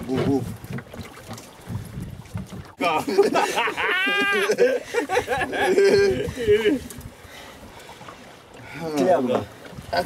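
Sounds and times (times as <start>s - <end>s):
wind buffeting the microphone: 0.0s - 2.8s, 5.0s - 10.0s
man laughing: 2.8s - 6.9s.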